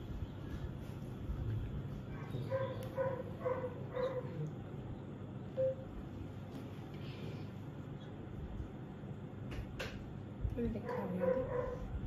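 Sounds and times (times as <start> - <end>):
dog barking: 2.1 - 4.5, 10.8 - 11.9.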